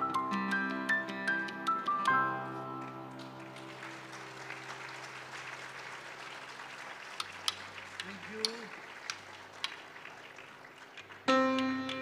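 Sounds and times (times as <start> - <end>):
audience applause: 2.8 - 12.0.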